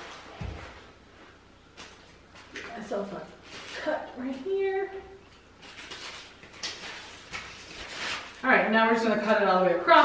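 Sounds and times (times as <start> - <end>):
plastic wrap rustling: 0.0 - 10.0.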